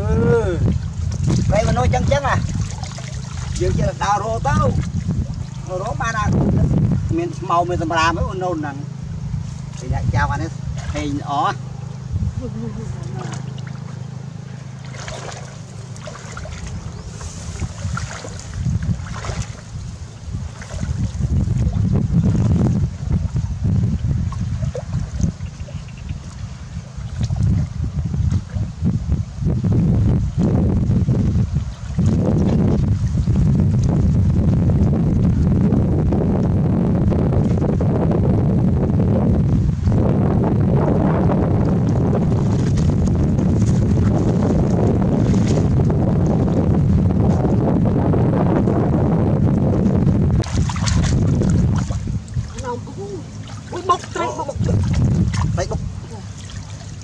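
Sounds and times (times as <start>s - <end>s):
people wading in water: 0.0s - 29.2s, 31.1s - 36.0s, 37.2s - 57.0s
wind buffeting microphone: 0.0s - 57.0s.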